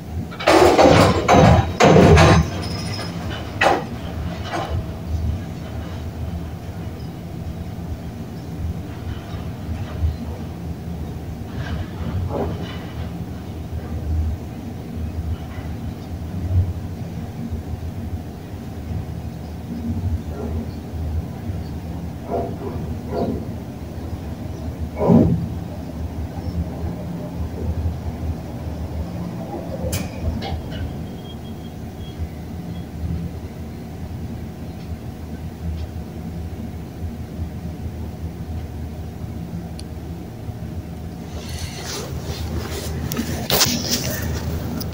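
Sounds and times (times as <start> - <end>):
elevator rumbling and rattling: 0.0 - 44.9
clatters and squeaks: 0.3 - 16.2, 29.1 - 33.0, 41.2 - 44.9.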